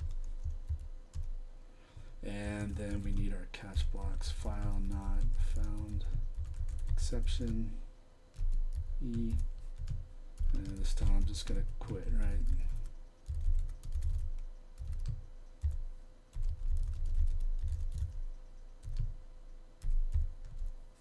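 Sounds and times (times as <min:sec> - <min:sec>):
computer keyboard typing: 0:00.0 - 0:01.4, 0:02.4 - 0:07.7, 0:08.3 - 0:19.2, 0:19.8 - 0:20.8
person speaking: 0:02.0 - 0:07.9, 0:08.8 - 0:12.9.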